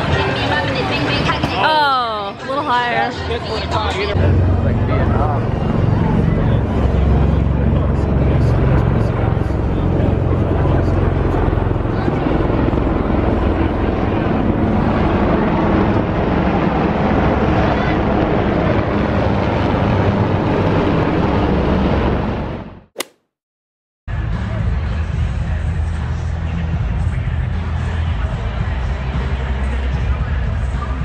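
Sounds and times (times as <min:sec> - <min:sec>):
crowd chatter: 0:00.0 - 0:14.5
aircraft flying low overhead: 0:04.1 - 0:22.7.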